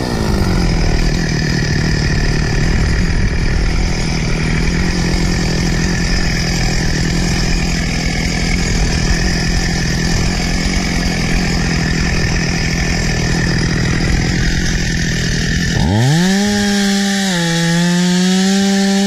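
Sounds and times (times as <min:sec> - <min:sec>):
chainsaw engine running: 0:00.0 - 0:19.0.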